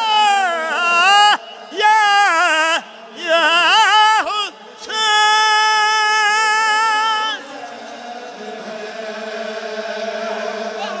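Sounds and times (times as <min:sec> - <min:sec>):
men chanting in unison: 0:00.0 - 0:11.0.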